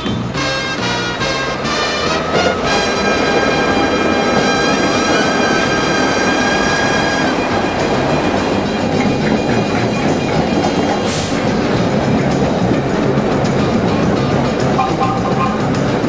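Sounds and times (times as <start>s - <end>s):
instrumental music: 0.0s - 16.0s
subway trains running on track: 0.0s - 16.0s.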